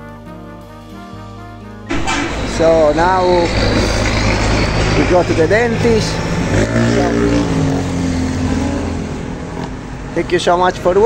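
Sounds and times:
vehicle engine passing: 0:01.9 - 0:10.3.

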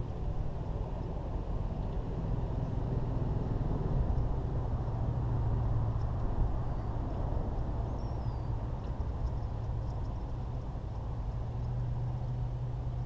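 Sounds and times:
distant engine rumble: 0:00.0 - 0:13.0
hum: 0:00.0 - 0:13.0.

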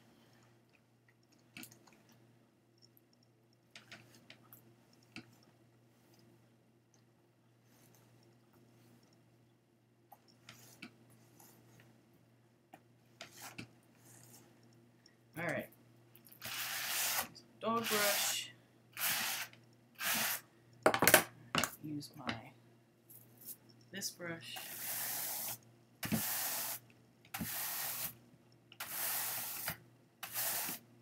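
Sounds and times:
low steady hum: 0:00.0 - 0:28.8.

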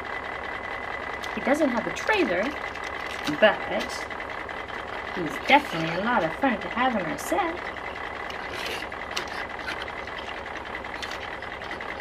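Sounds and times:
toy truck clicking on tabletop: 0:07.6 - 0:12.0.

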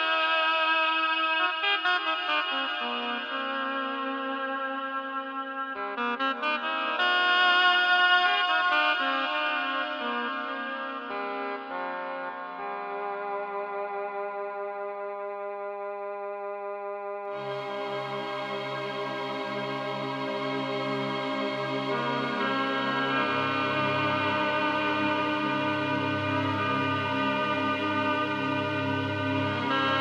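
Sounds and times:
synthesizer melody over held chords: 0:17.1 - 0:30.0.

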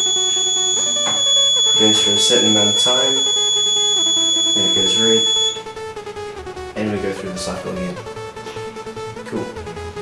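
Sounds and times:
high-pitched buzzer tone: 0:00.0 - 0:05.7.

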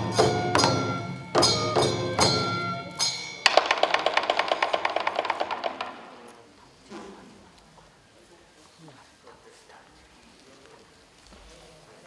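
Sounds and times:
ringing metal percussion: 0:00.0 - 0:05.5
taiko drums: 0:00.0 - 0:06.1.

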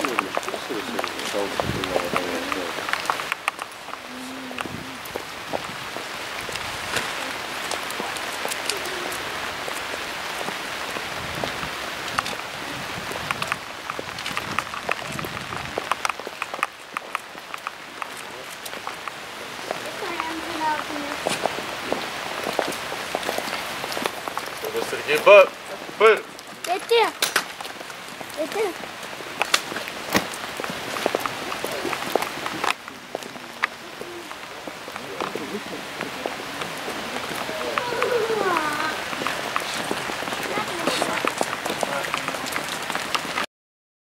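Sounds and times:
raindrops ticking: 0:00.0 - 0:43.5
steady rain hiss: 0:00.0 - 0:43.5.

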